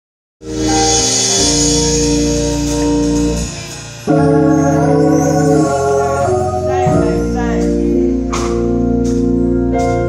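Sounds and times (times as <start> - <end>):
church organ chord: 0.6 - 10.0.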